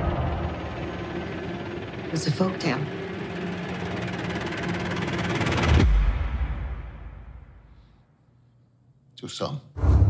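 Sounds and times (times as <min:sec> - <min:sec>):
rapidly pulsing swell: 0:00.0 - 0:05.8.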